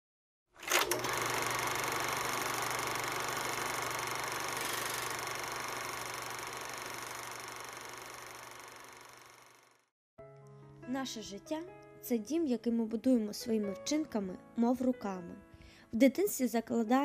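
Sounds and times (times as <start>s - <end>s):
mechanical whirring rattle: 0.6s - 9.9s.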